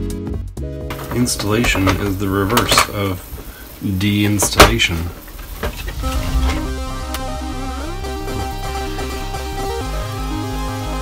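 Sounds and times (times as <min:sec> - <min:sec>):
electronic music with pulsing bass: 0:06.0 - 0:11.0.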